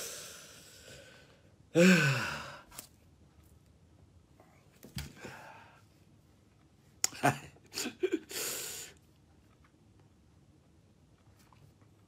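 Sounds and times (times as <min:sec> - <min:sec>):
man sighing: 0:01.7 - 0:02.7.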